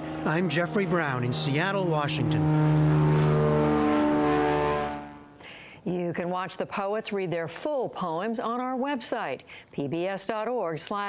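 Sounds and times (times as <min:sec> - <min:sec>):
propeller plane engine droning: 0:00.0 - 0:05.4.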